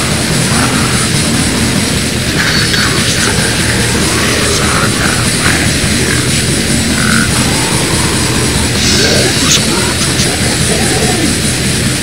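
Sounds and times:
distorted guitars: 0.0s - 12.0s.

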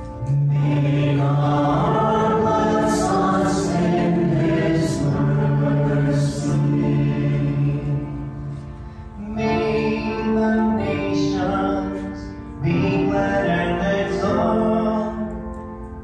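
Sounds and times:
instrumental accompaniment: 0.0s - 16.0s
voices singing long notes: 0.2s - 8.6s.

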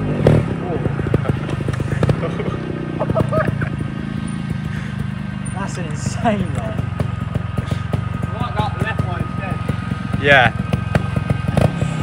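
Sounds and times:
voices: 0.0s - 4.0s, 4.9s - 10.8s
motorbike running at low speed: 0.0s - 12.0s.

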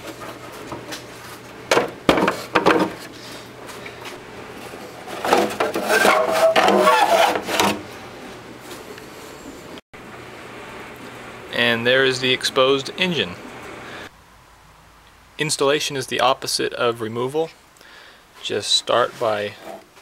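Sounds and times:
plastic rubbing and scraping: 4.6s - 8.4s.

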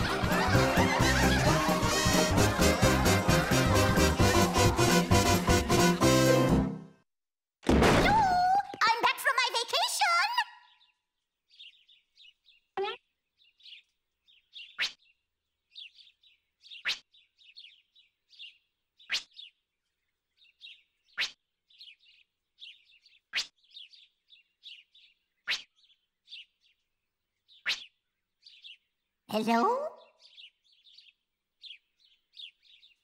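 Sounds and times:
small birds chirping: 8.6s - 33.0s.

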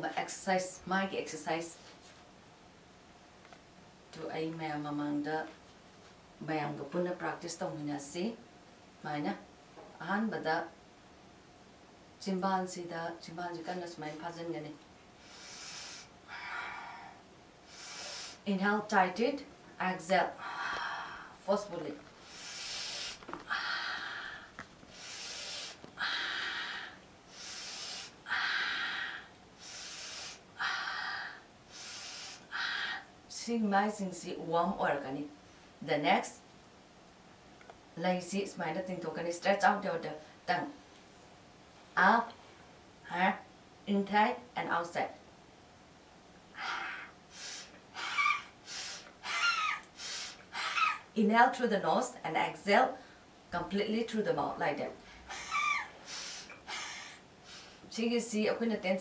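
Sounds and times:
woman breathing forcefully: 15.2s - 18.4s, 20.4s - 21.4s, 22.2s - 33.2s, 46.5s - 51.0s, 55.0s - 57.9s
woman exhaling forcefully: 55.2s - 57.7s.

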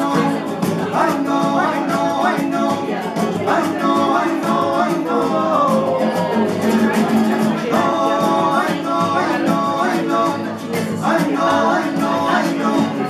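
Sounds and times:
acoustic guitars strummed fast: 0.0s - 13.0s
men singing together: 0.0s - 13.0s.

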